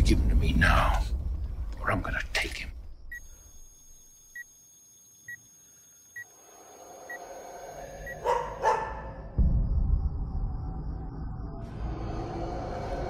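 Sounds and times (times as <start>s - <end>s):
deep boom: 9.2s - 12.2s.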